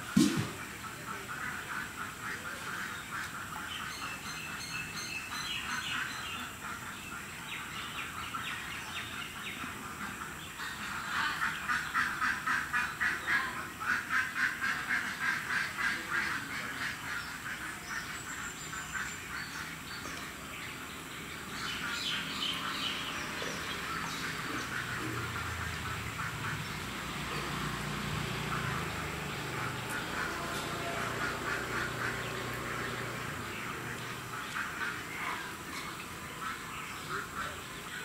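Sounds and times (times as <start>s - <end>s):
ducks quacking: 0.0s - 38.0s.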